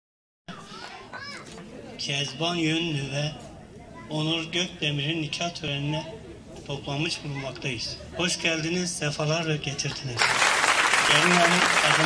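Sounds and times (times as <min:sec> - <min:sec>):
children calling out: 0:00.5 - 0:01.6.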